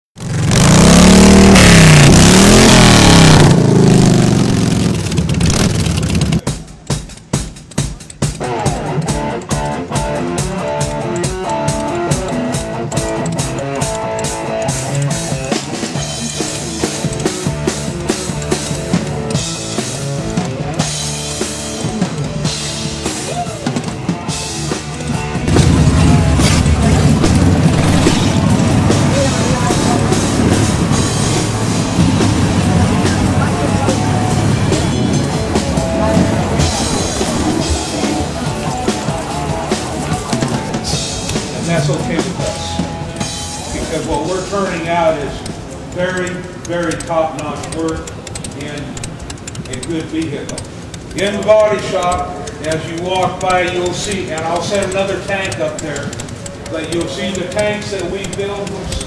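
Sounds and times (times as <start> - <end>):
motorcycle engine revving: 0.1 - 7.4, 8.2 - 59.0
drum kit beat: 0.2 - 59.0
live rock music: 0.2 - 59.0
low rumble: 24.1 - 44.5.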